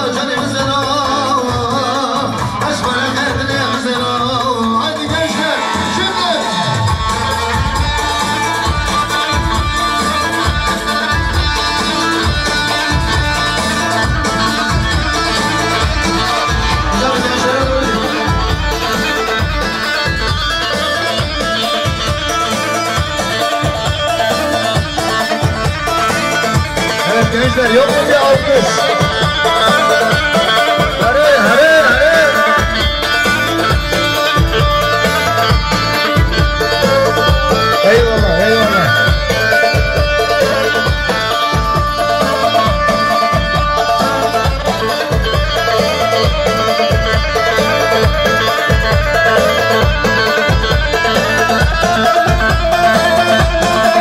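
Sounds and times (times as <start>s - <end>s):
heavy low beat: 6.8s - 54.0s
long-necked lute melody: 6.9s - 54.0s.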